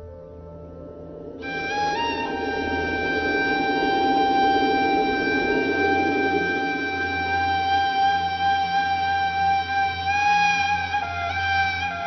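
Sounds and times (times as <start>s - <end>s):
reed flute long note: 0.0s - 12.0s.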